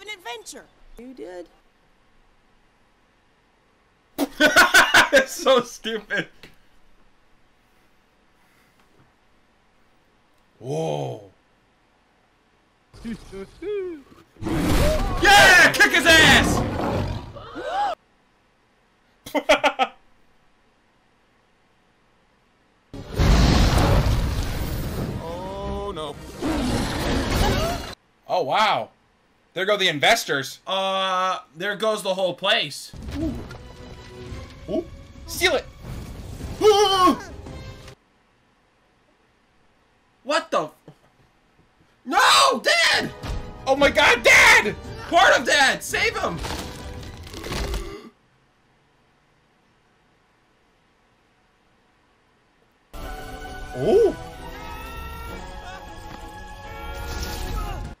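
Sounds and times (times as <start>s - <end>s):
rumbling crashing noise: 23.0s - 28.0s, 35.7s - 36.7s.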